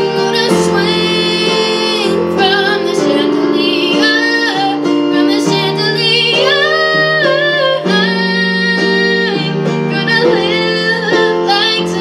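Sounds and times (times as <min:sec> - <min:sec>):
girl singing pop song: 0:00.0 - 0:12.0
instrumental backing music: 0:00.0 - 0:12.0.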